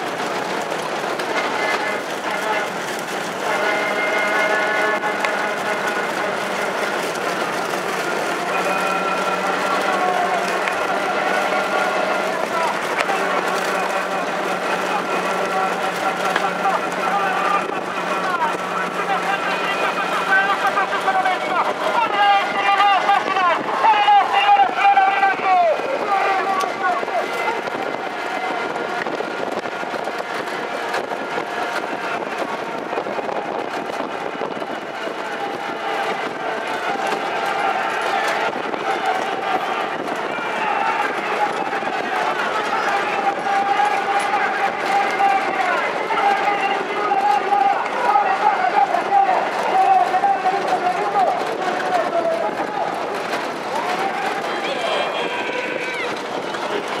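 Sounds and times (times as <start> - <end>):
people shouting: 0.0 - 57.0.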